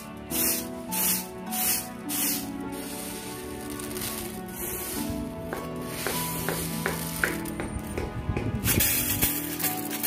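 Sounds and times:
background music: 0.0s - 10.0s
lentils rattling in a tray: 0.4s - 5.0s, 8.7s - 10.0s.

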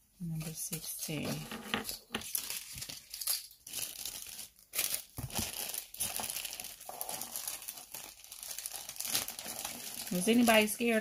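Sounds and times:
plastic bag crinkling: 0.4s - 11.0s.

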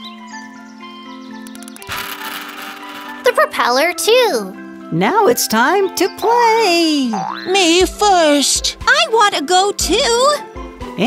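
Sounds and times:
background music: 0.0s - 11.0s
toy boat motor whirring: 1.6s - 3.3s.

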